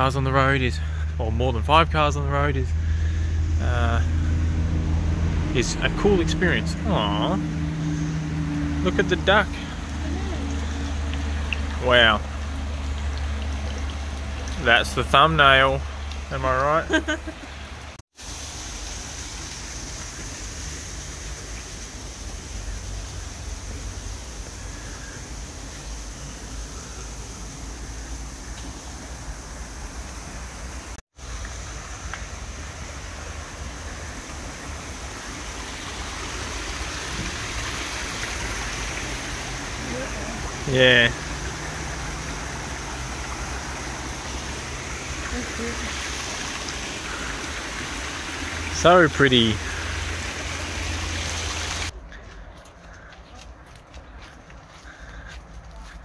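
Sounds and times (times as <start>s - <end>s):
running water cascade: 1.8s - 51.9s
footsteps on dirt path: 51.9s - 56.0s
faint bird calls: 54.8s - 56.0s.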